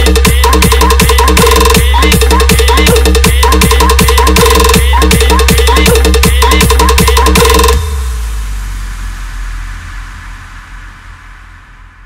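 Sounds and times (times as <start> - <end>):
edm drop with heavy bass: 0.0 - 12.0
low bass rumble: 0.0 - 12.0.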